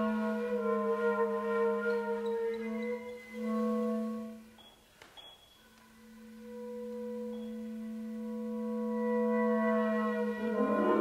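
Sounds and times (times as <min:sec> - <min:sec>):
held chamber music tone: 0:00.0 - 0:11.0.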